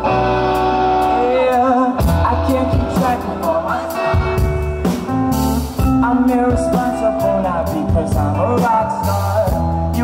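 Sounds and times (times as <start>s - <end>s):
bass and drums: 0.0s - 10.0s
electric guitar: 0.0s - 10.0s
person singing: 0.9s - 4.7s, 5.8s - 10.0s.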